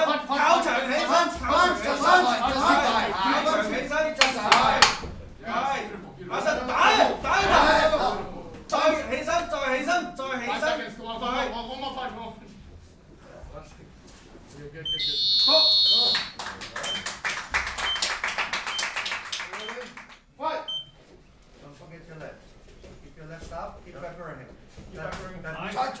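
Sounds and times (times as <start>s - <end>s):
electronic buzzer high tone: 14.9s - 16.4s.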